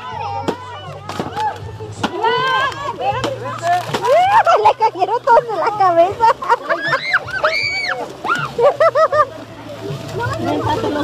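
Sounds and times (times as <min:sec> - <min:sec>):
children chattering: 0:00.0 - 0:11.0
children shouting: 0:06.6 - 0:08.6.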